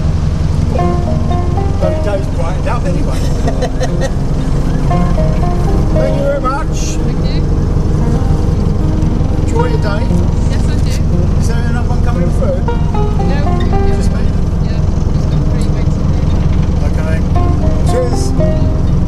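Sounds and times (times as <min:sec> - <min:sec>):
boat diesel engine droning: 0:00.0 - 0:19.0.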